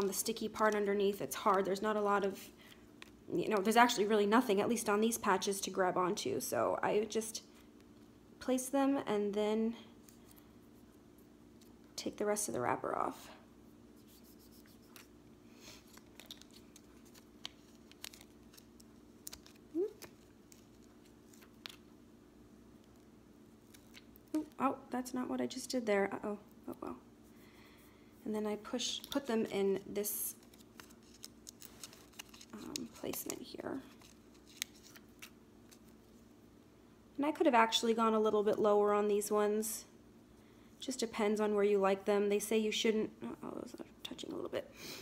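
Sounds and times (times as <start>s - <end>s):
plastic wrapper crinkling: 15.8s - 21.9s, 30.1s - 36.0s
plastic backing crackles and clicks: 15.9s - 21.9s, 30.4s - 35.9s.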